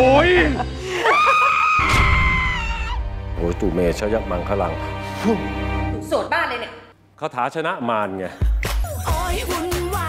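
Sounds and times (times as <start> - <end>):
long high scream: 1.0 - 3.0.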